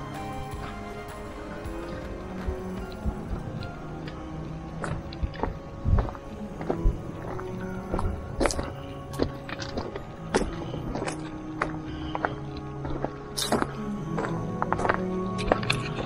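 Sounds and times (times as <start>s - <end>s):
background music with held notes: 0.0s - 16.0s
footsteps on gravel: 0.6s - 16.0s.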